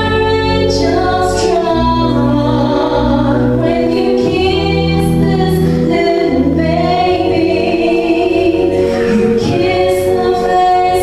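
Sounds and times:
choral backing: 0:00.0 - 0:11.0
woman singing into microphone: 0:00.0 - 0:11.0.

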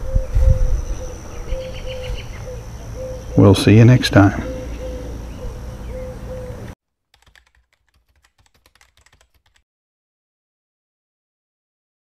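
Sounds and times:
insects droning: 0:00.7 - 0:06.6.

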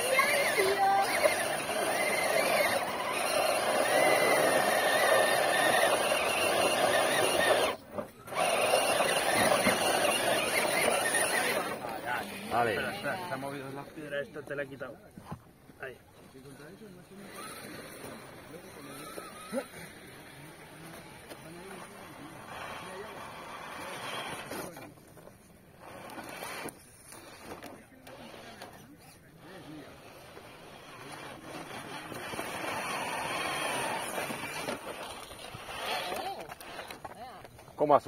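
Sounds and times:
electric rc car motor: 0:00.0 - 0:14.7, 0:15.8 - 0:38.0
faint voices: 0:00.0 - 0:38.0.

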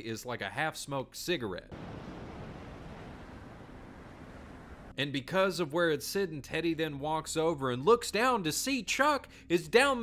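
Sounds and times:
sea surf: 0:01.7 - 0:04.9
wind hiss: 0:01.8 - 0:04.9.

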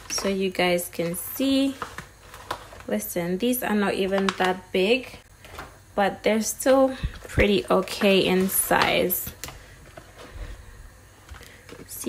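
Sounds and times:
plastic packaging rustling and sliding: 0:00.0 - 0:03.2, 0:07.0 - 0:12.0.

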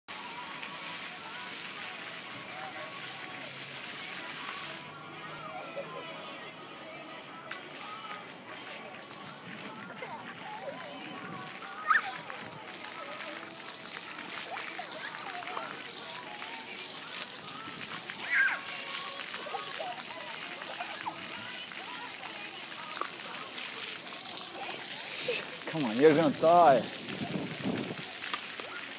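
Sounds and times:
faint children's voices: 0:00.1 - 0:28.9
fountain jets spraying water: 0:00.1 - 0:28.9.

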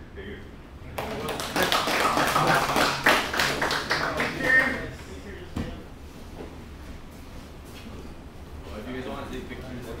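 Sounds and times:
people clapping: 0:00.9 - 0:05.1.

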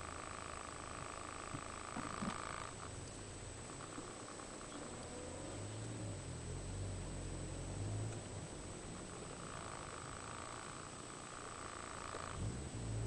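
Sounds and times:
car engine idling: 0:00.0 - 0:13.0
steady high hum: 0:00.0 - 0:13.0
faint clicks: 0:08.0 - 0:08.3.

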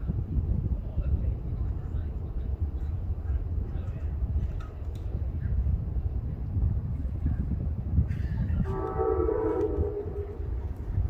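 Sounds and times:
low steady rumble: 0:00.0 - 0:11.0
distant train horn chord: 0:08.6 - 0:10.6.

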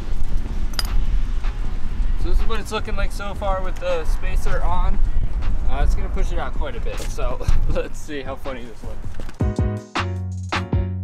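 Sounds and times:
wind buffeting microphone: 0:00.0 - 0:09.4
metallic clink: 0:00.7 - 0:01.0.

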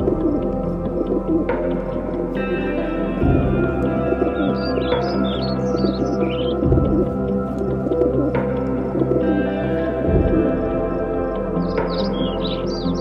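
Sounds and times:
bird chirps: 0:00.0 - 0:10.6, 0:11.6 - 0:13.0
ambient music sustained chords: 0:00.0 - 0:13.0.

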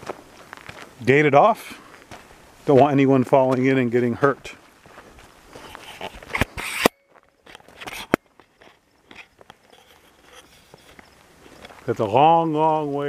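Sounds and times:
footsteps on gravel: 0:00.0 - 0:13.0.

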